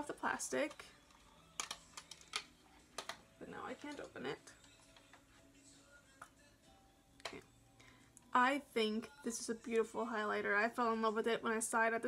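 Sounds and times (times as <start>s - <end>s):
fingers clicking plastic catch: 1.6s - 3.2s.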